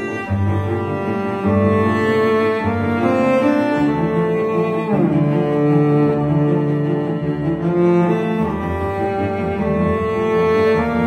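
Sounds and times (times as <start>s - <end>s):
sustained cello notes: 0.0s - 11.0s.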